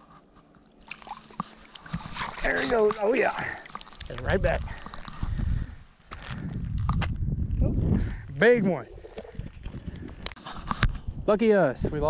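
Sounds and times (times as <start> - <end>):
camera handling rumble: 3.7 - 7.6, 9.2 - 11.2.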